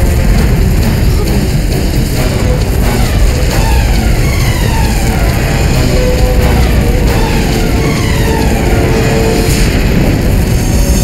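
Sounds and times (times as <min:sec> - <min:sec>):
dramatic background score: 0:00.0 - 0:11.0
low rumble: 0:00.0 - 0:11.0.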